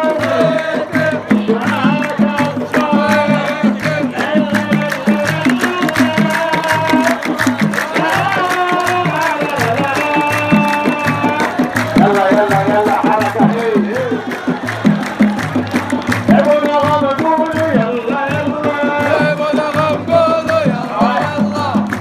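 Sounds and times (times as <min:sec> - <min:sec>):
crowd singing: 0:00.0 - 0:22.0
frame drums beaten: 0:00.0 - 0:22.0.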